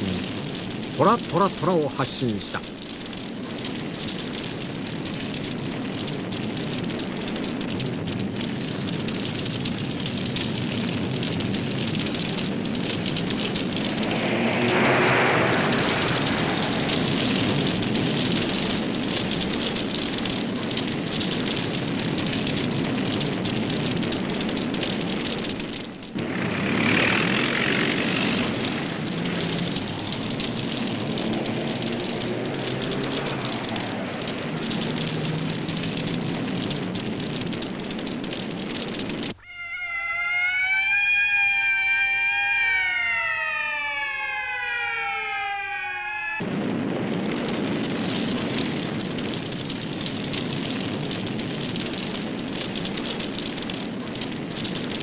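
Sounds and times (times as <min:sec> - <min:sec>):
fire and battle noise: 0:00.0 - 0:55.0
siren wailing: 0:12.8 - 0:18.8, 0:26.8 - 0:35.9, 0:39.4 - 0:46.4.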